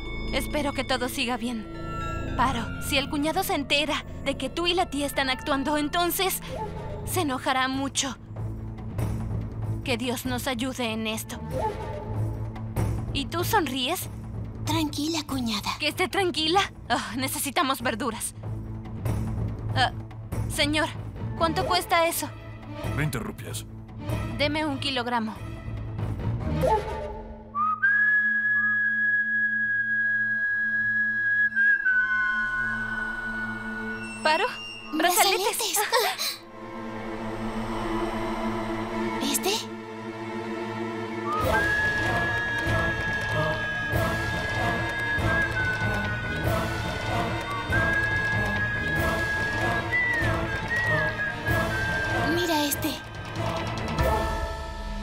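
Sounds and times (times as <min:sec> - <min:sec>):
high whistle-like note: 0:27.5 - 0:35.0
steady low drone: 0:36.4 - 0:41.2.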